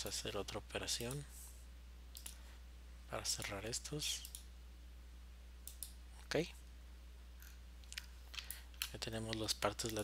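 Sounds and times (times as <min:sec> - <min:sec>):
low electrical hum: 0:00.0 - 0:10.0
computer mouse clicks: 0:02.1 - 0:02.4, 0:04.2 - 0:04.5, 0:05.6 - 0:06.0.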